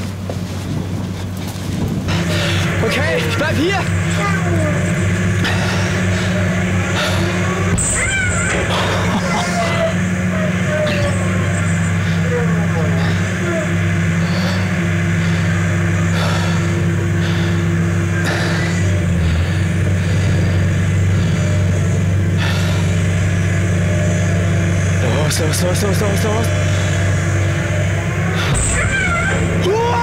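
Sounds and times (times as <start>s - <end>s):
diesel engine humming: 0.0s - 30.0s.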